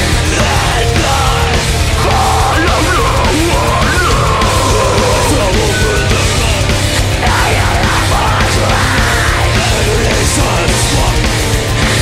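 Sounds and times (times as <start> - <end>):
bass guitar: 0.0 - 12.0
distorted electric guitars: 0.0 - 12.0
drums: 0.0 - 12.0.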